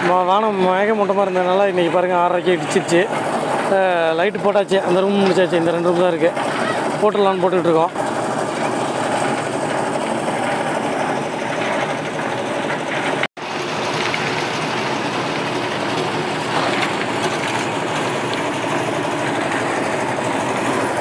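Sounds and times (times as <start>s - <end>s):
engine running steadily: 0.0s - 21.0s.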